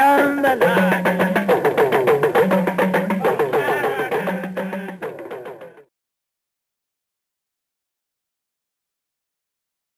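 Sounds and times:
talking drums playing rhythm: 0.0s - 5.9s.

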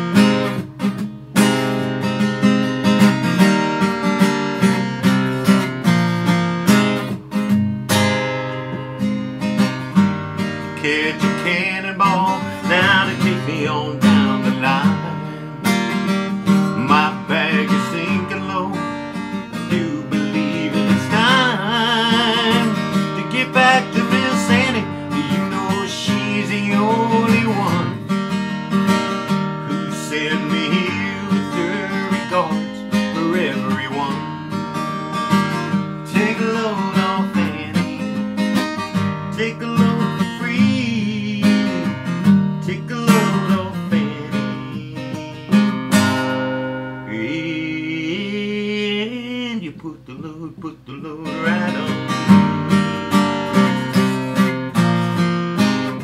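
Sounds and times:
acoustic guitar strummed chords: 0.0s - 56.0s.

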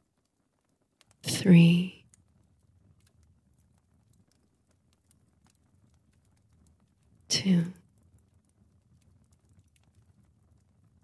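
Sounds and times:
faint clicks: 2.0s - 11.0s.

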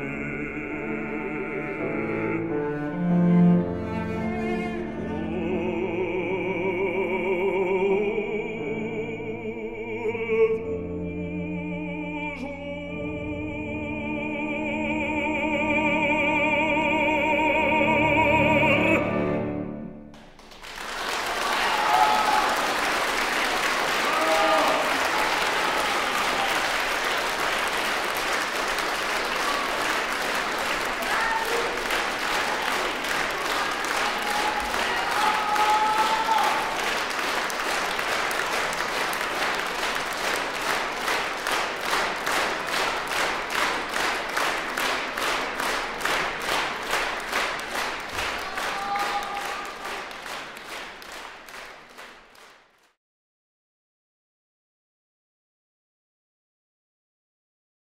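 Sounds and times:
audience applauding: 20.1s - 53.0s
clapping in unison: 20.1s - 53.0s
audience shouts: 21.4s - 22.8s, 24.0s - 26.7s, 31.0s - 31.9s, 33.4s - 36.8s, 48.4s - 49.8s.

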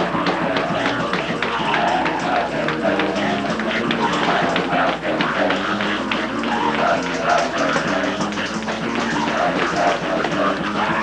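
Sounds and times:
other voices singing: 0.0s - 11.0s.

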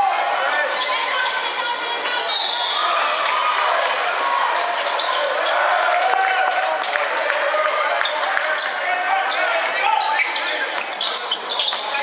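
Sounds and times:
crowd calling out and cheering: 0.0s - 12.0s.

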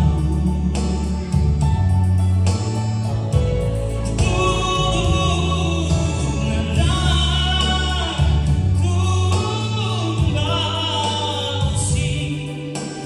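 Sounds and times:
musical accompaniment with bass notes: 0.0s - 13.0s
man singing into a microphone: 4.0s - 13.0s.

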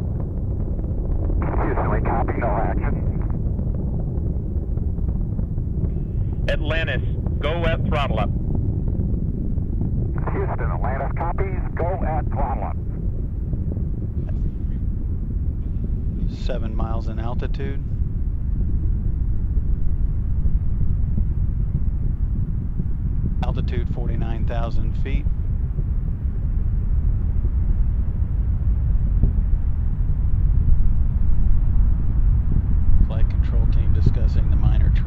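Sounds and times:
rocket engines deep rumble: 0.0s - 35.0s.

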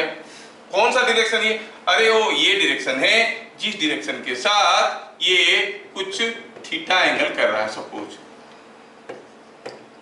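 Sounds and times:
stylus tapping on screen: 9.0s - 9.9s.

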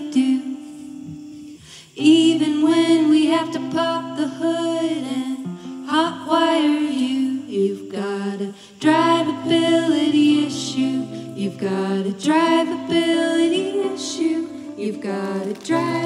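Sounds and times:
electric and acoustic guitars: 0.0s - 16.0s
people singing: 0.0s - 16.0s.

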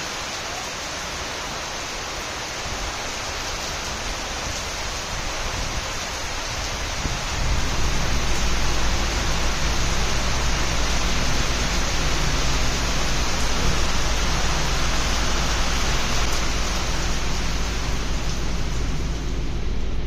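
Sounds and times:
heavy rain: 0.0s - 20.0s
deep rumble: 5.7s - 20.0s.

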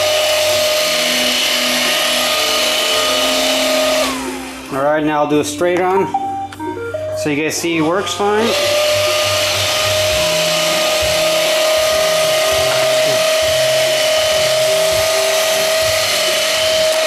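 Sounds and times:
robot vacuum motor whine: 0.0s - 4.8s, 8.3s - 17.0s.

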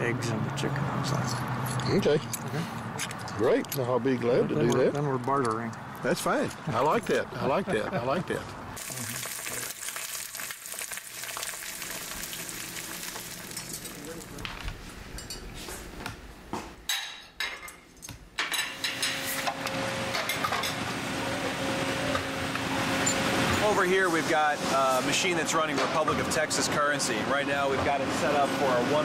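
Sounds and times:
egg sizzling in a pan: 8.8s - 14.4s.

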